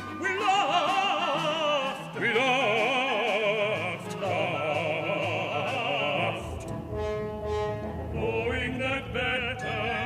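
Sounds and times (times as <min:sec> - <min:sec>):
operatic voice singing: 0:00.0 - 0:06.8, 0:08.1 - 0:10.0.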